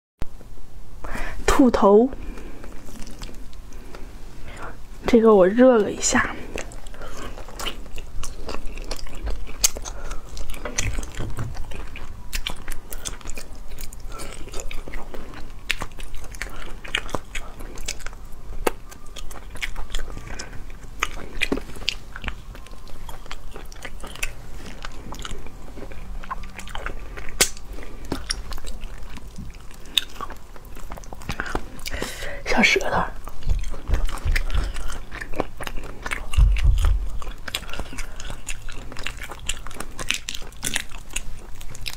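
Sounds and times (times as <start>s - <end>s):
chewing and sucking meat: 1.8s - 5.1s, 5.8s - 41.9s.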